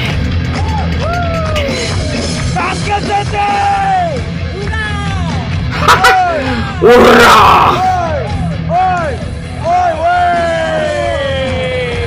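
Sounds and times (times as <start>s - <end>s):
live metal band playing: 5.4s - 11.2s
shouted vocal calls: 5.9s - 8.0s.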